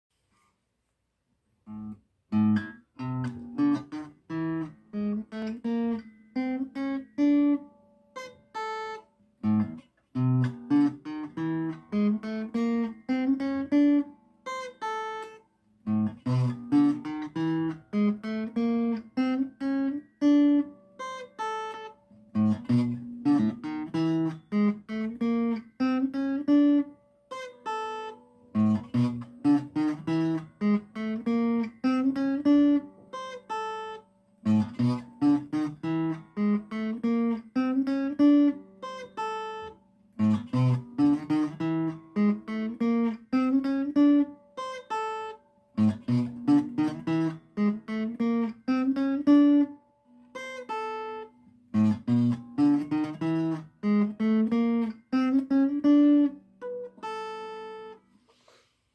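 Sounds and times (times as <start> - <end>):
electric guitar single notes: 1.7 - 58.0.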